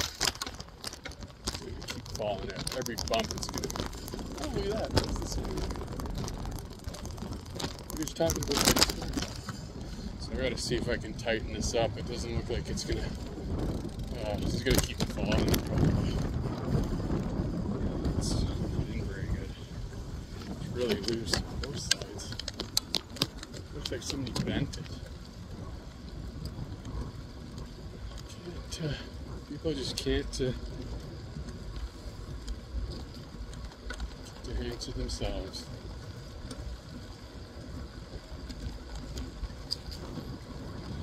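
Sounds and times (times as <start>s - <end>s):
bicycle road noise: 0.0s - 41.0s
wind rumble: 0.0s - 41.0s
faint ticks: 20.3s - 41.0s.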